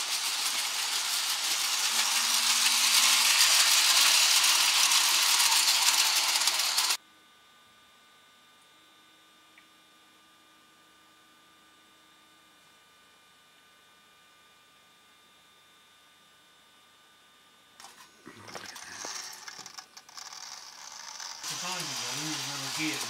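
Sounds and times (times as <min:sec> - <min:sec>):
toy train rattling on metal track: 0:00.0 - 0:07.0, 0:18.5 - 0:23.0
faint electrical hum: 0:07.0 - 0:23.0.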